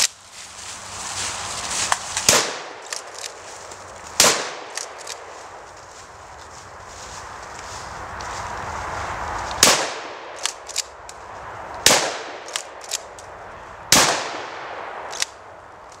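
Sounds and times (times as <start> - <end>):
shotgun shots echoing: 2.2 - 3.1, 4.2 - 5.2, 9.6 - 10.6, 11.8 - 12.8, 13.9 - 15.2
sharp gun clicks: 2.2 - 3.4, 4.2 - 5.3, 9.5 - 11.2, 11.9 - 13.3, 15.1 - 16.0.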